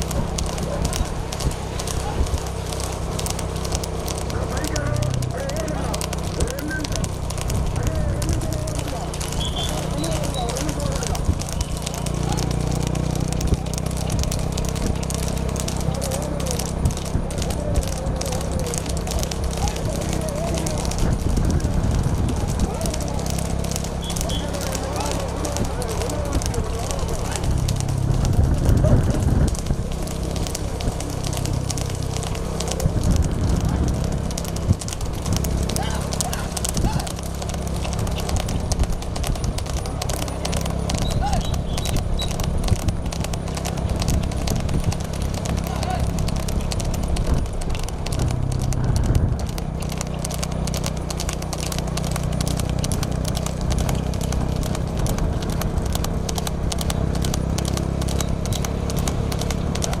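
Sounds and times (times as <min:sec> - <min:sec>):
horse hoofbeats on asphalt: 0:00.0 - 1:00.0
low engine rumble: 0:00.0 - 1:00.0.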